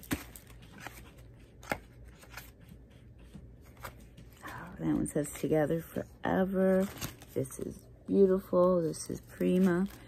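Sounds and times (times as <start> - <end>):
paper cards rustling: 0.0 - 7.8, 8.6 - 10.0.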